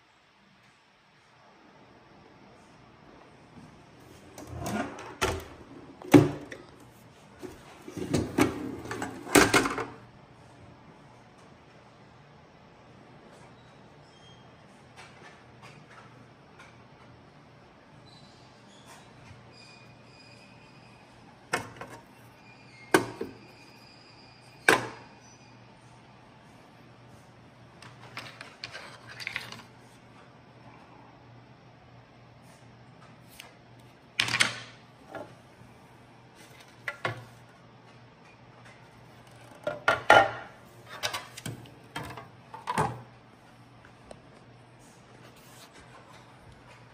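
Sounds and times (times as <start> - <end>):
faint high squeaks: 13.5 - 14.6, 18.0 - 21.2, 22.2 - 25.7.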